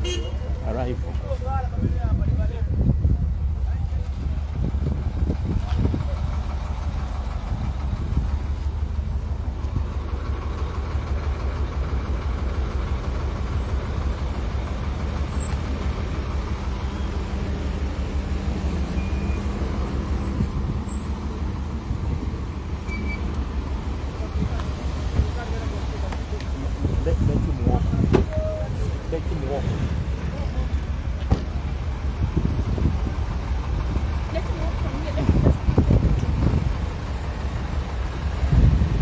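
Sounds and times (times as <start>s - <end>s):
engine rumble: 0.0s - 39.0s.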